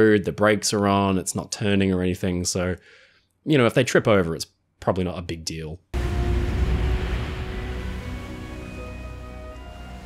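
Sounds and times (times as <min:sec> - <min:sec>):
film soundtrack music: 0:06.0 - 0:10.0.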